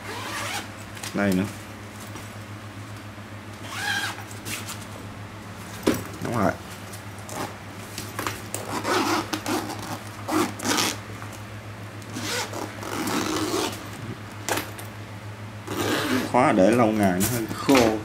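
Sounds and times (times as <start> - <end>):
zipper pulled open on fabric bag: 8.6 - 11.0, 12.1 - 13.8, 15.7 - 16.3.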